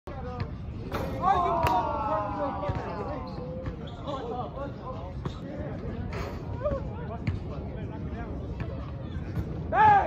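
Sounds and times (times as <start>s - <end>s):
players shouting: 1.0s - 3.3s, 9.7s - 10.0s.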